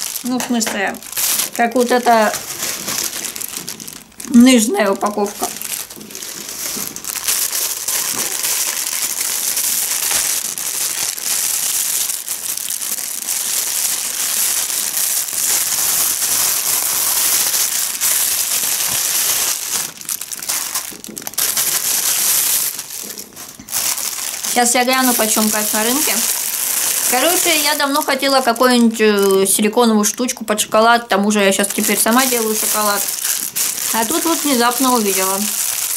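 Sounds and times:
plastic packaging crinkling: 0.0s - 35.9s.

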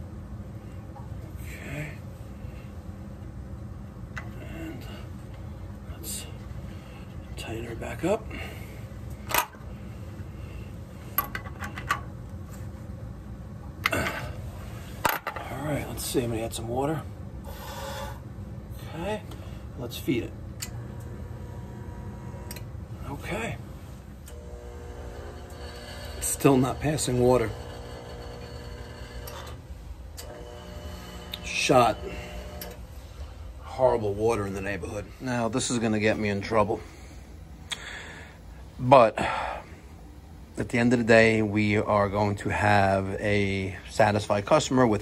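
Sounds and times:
steady low hum: 0.0s - 45.0s.

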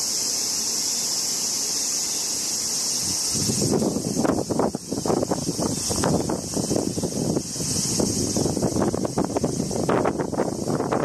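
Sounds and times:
high insect buzz: 0.0s - 11.0s
wind buffeting microphone: 3.0s - 11.0s.

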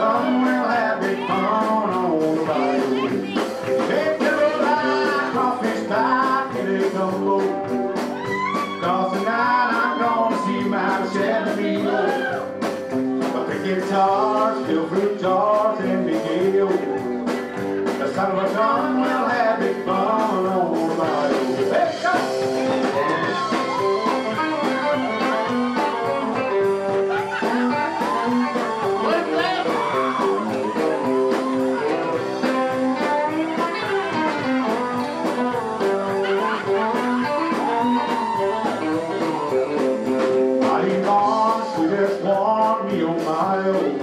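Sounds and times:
electric guitar: 0.0s - 44.0s
live country band: 0.0s - 44.0s
steady drum beat: 0.0s - 44.0s.

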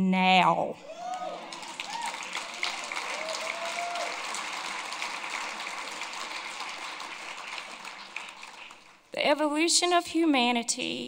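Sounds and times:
whoops: 0.8s - 4.4s
audience applauding: 0.9s - 9.1s.

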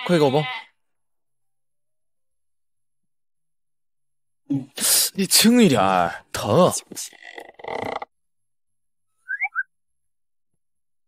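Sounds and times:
whistle-like comic chirp: 9.2s - 9.7s.

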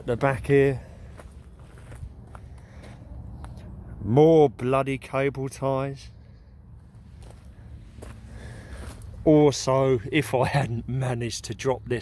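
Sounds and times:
light clicks and scuffs: 1.0s - 3.8s, 6.9s - 9.2s.

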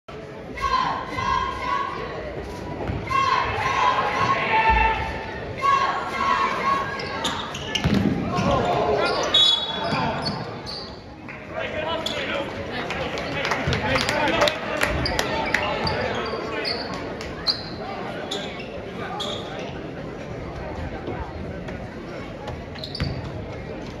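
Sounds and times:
spectators' voices echoing: 0.1s - 24.0s.

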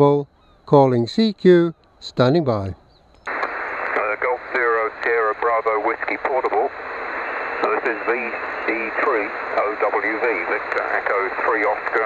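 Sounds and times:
person speaking over radio: 3.3s - 12.0s
radio band hiss: 3.3s - 12.0s.

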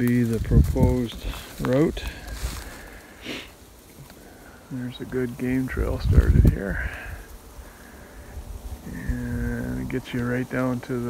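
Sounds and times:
footsteps rustling through dry grass: 0.0s - 11.0s
low wind rumble: 0.0s - 11.0s
microphone handling noise: 5.7s - 7.2s.

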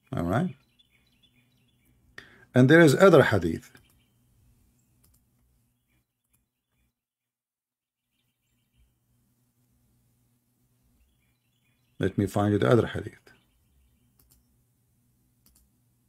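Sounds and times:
faint low hum: 0.0s - 6.9s, 8.0s - 16.0s
very faint clicks: 3.7s - 4.0s, 5.0s - 5.5s, 14.1s - 14.5s, 15.4s - 15.8s.

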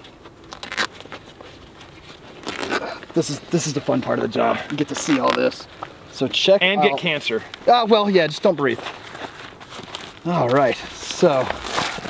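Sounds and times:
fabric rustling and scraping: 0.0s - 5.9s, 8.7s - 12.0s.

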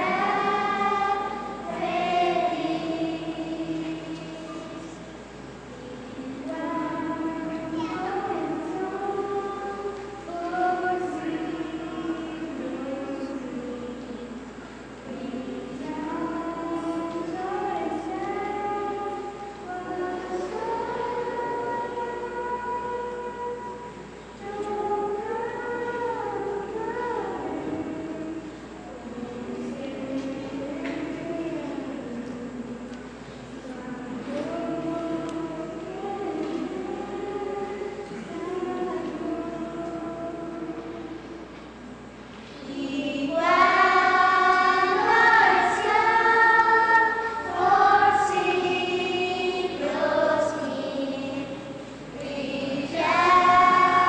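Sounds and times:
children's choir singing: 0.0s - 54.0s.

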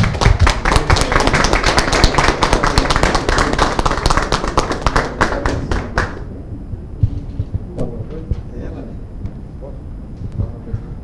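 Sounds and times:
people applauding: 0.0s - 6.4s.

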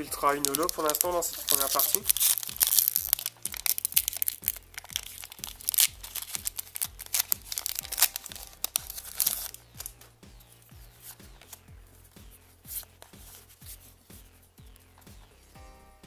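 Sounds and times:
foil wrapper crinkling and tearing: 0.0s - 11.7s.

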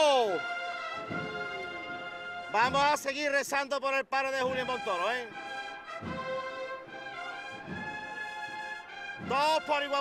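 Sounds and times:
brass band playing a march: 0.1s - 3.4s, 4.4s - 10.0s.

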